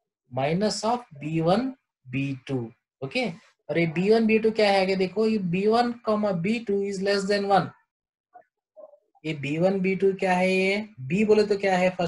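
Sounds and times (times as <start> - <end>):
person speaking: 0.3 - 7.8, 9.2 - 12.0.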